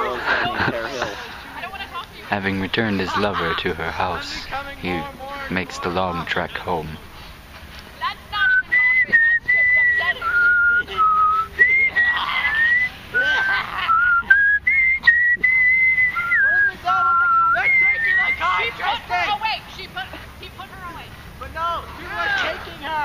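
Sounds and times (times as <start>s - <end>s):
person whistling a tune: 8.4s - 18.4s.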